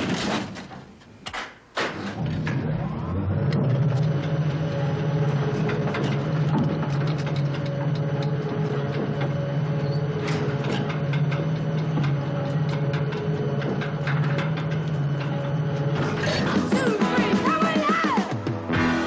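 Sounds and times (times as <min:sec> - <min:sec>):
low mechanical drone: 0:02.0 - 0:17.4
irregular clicks and rattles: 0:03.5 - 0:16.7.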